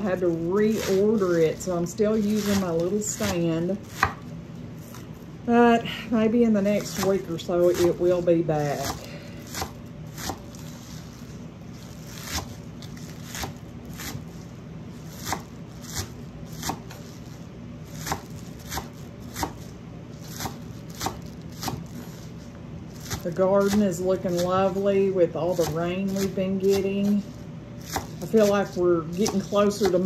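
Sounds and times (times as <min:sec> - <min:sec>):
steady low hum: 0:00.0 - 0:30.0
knife chopping on wooden board: 0:02.2 - 0:04.3, 0:08.7 - 0:10.5, 0:12.2 - 0:12.6, 0:13.3 - 0:14.2, 0:15.2 - 0:17.0, 0:18.0 - 0:19.7, 0:20.3 - 0:22.1, 0:27.8 - 0:30.0.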